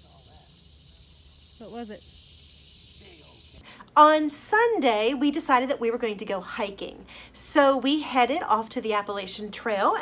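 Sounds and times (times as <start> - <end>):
insect chorus buzzing: 0.0 - 3.6.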